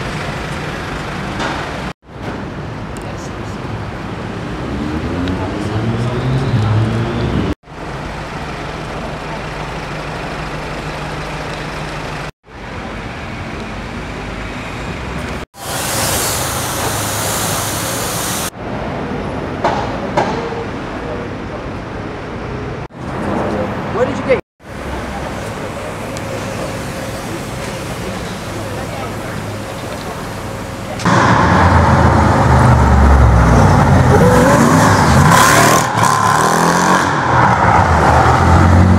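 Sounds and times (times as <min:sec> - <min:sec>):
street traffic hum: 0:00.0 - 0:38.9
pressure washer jet hissing: 0:15.6 - 0:18.5
car engine revving: 0:25.6 - 0:38.9.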